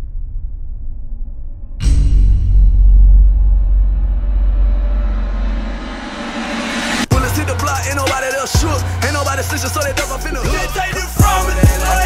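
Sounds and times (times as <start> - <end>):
deep rumble: 0.0 - 12.0
rising whoosh of noise: 3.8 - 7.1.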